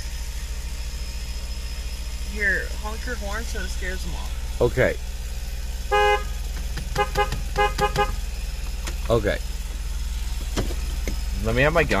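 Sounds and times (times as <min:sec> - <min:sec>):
car engine idling: 0:00.0 - 0:12.0
car horn toots: 0:05.9 - 0:08.3.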